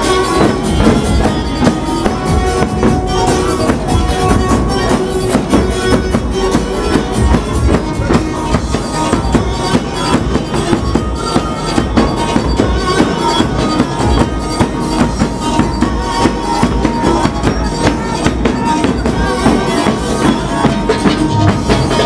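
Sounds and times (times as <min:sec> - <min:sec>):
bass drums beating: 0:00.0 - 0:22.0
held melodic note: 0:00.0 - 0:22.0.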